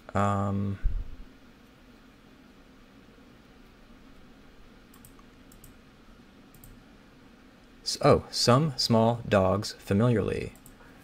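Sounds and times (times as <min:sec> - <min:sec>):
computer mouse clicks: 0:04.9 - 0:05.8, 0:06.5 - 0:06.8, 0:10.6 - 0:10.8.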